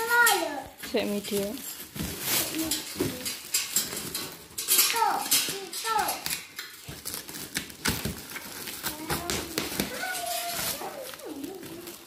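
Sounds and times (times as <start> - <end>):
metal parts clinking and knocking: 0.0 - 7.0
plastic wrap crackling: 0.0 - 12.0.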